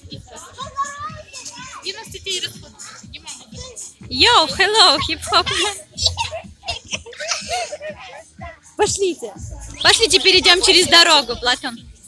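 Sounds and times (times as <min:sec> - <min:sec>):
children chattering: 0:00.0 - 0:11.9
background music with beat: 0:00.0 - 0:12.0.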